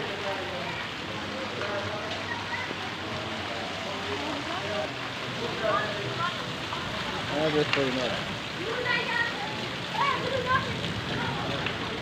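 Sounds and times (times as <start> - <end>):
faint voices: 0.0 - 12.0
rain falling on ground: 0.0 - 12.0.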